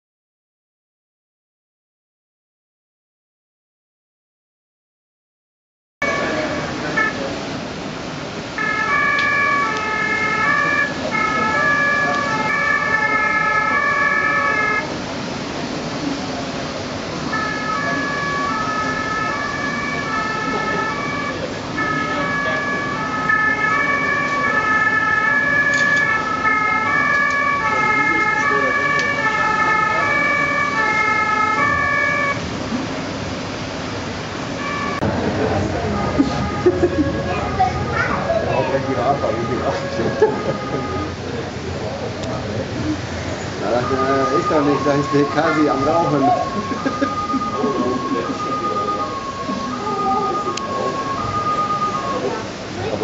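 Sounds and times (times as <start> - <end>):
two-tone emergency siren: 6.0 - 7.8, 8.4 - 15.8, 16.9 - 41.4, 43.5 - 53.0
hall background noise: 6.0 - 53.0.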